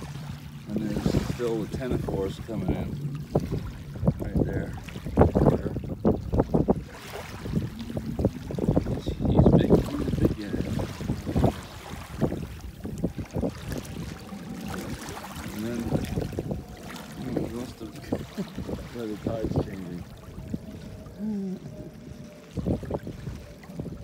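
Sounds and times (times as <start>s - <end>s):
small waves washing on sand: 0.0s - 2.5s, 4.2s - 20.1s
wind buffeting microphone: 0.0s - 24.0s.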